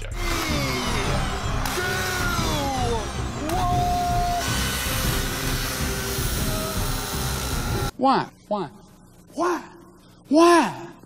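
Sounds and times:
electric chainsaw cutting fabric: 0:00.0 - 0:07.9.

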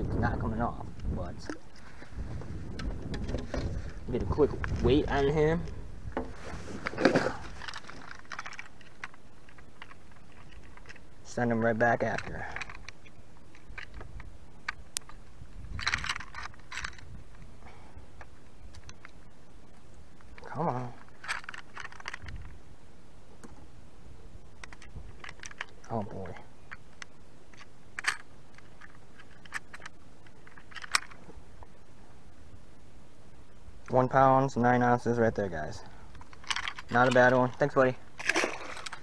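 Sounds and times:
rattling and scraping: 0:01.4 - 0:11.1, 0:12.0 - 0:17.4, 0:20.4 - 0:22.5, 0:36.1 - 0:39.0.

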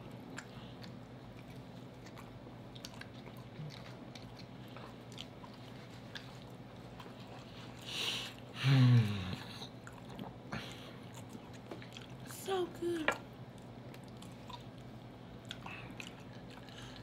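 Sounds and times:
chewing chicken: 0:00.0 - 0:12.4, 0:13.1 - 0:17.0
low steady hum: 0:00.0 - 0:17.0.

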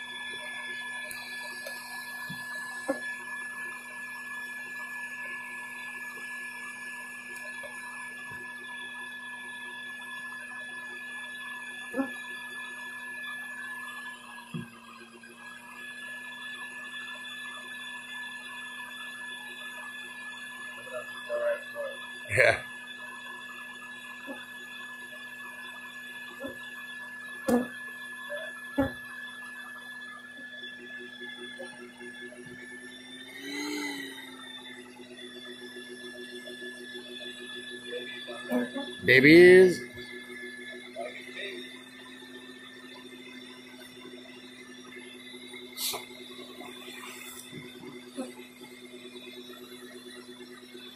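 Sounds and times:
vacuum humming: 0:00.0 - 0:21.4, 0:23.2 - 0:49.8.

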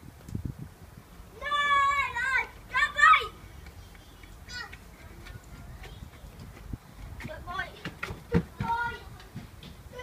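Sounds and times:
children's voices: 0:01.3 - 0:10.0.

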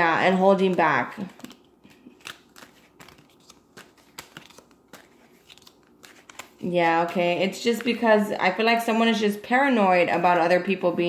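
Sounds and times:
cards being shuffled: 0:00.2 - 0:08.1.

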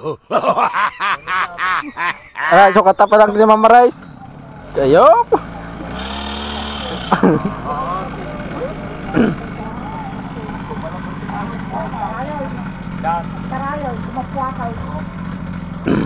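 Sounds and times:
men's voices: 0:00.0 - 0:15.0
small engine idling: 0:01.9 - 0:16.0.

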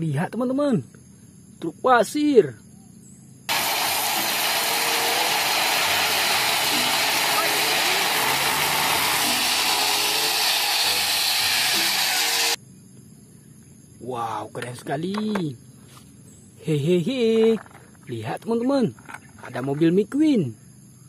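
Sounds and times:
gravel rushing out of truck: 0:03.5 - 0:11.7
truck engine running: 0:03.5 - 0:12.6.

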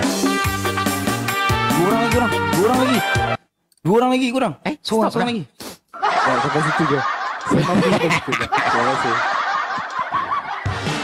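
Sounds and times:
backing music: 0:00.0 - 0:03.4, 0:10.6 - 0:11.0
man laughing: 0:06.0 - 0:10.8.

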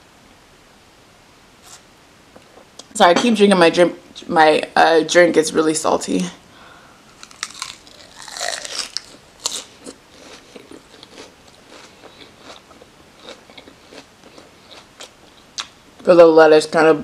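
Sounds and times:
crunchy chewing of lettuce: 0:07.1 - 0:15.8.

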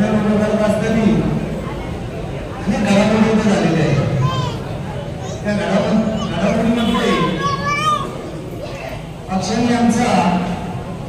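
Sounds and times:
higher-pitched voices: 0:03.7 - 0:09.3
man speaking through pa: 0:05.4 - 0:07.6.

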